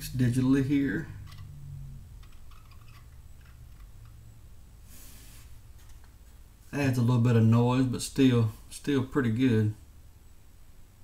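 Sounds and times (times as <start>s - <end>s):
steady low hum: 0.0s - 11.0s
short hiss: 4.9s - 5.6s.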